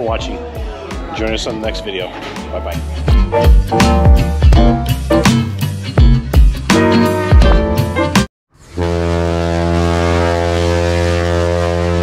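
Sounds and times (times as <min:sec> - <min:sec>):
music: 0:00.0 - 0:08.3
ship horn long deep blast: 0:08.6 - 0:12.0.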